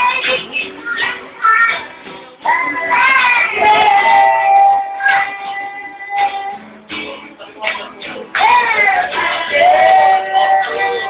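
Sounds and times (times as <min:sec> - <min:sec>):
acoustic guitar strumming: 0:00.0 - 0:11.0
man singing: 0:02.5 - 0:11.0.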